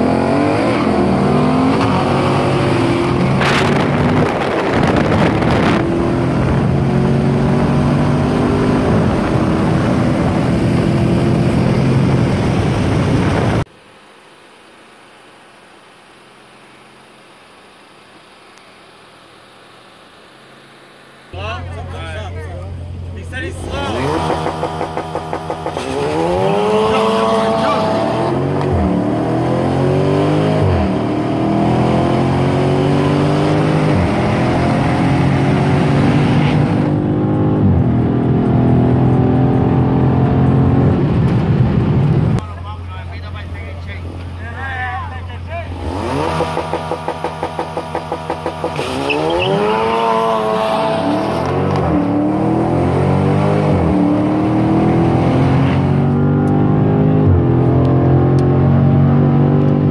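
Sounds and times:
car engines revving: 0.0s - 13.7s, 16.1s - 59.9s.

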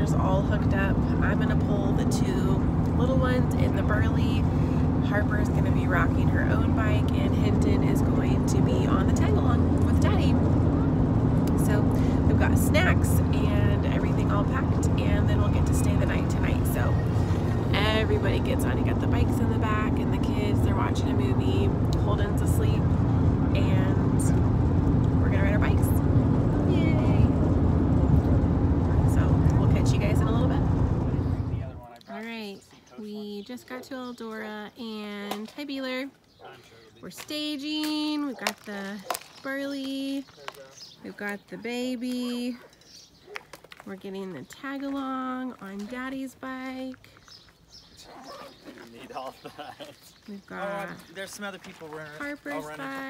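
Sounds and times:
car cabin road rumble: 0.0s - 31.9s
background voices talking: 0.0s - 42.8s, 43.6s - 53.0s.

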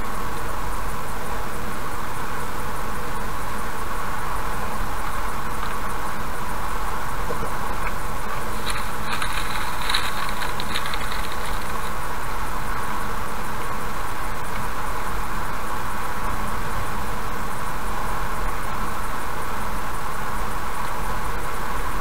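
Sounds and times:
car road and engine noise: 0.0s - 22.0s.

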